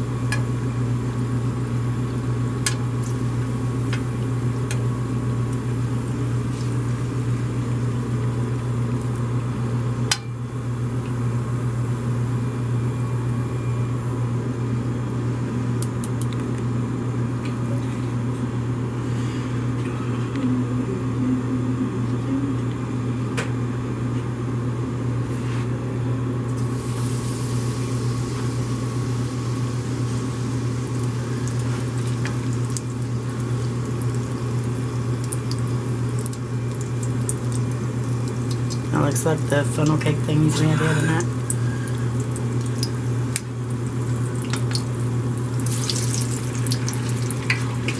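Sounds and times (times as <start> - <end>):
low kitchen hum: 0.0 - 47.9
food sizzling in hot oil: 26.6 - 47.9.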